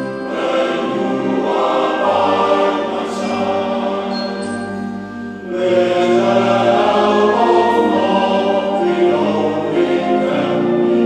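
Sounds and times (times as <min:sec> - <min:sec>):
concert wind band playing: 0:00.0 - 0:11.0
men's choir singing: 0:00.0 - 0:11.0.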